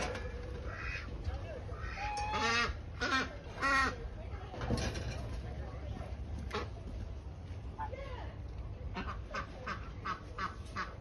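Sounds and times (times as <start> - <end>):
geese honking: 0.6 - 4.0.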